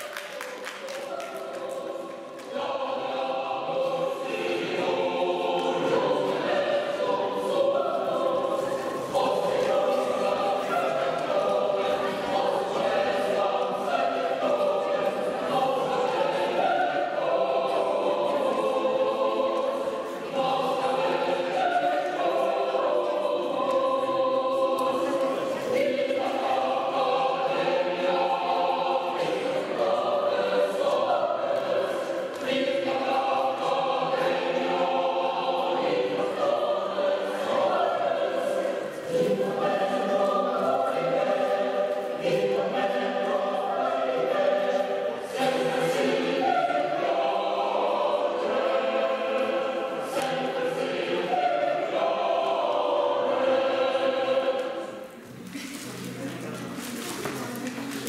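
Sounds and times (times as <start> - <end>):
choir singing: 0.0 - 58.0.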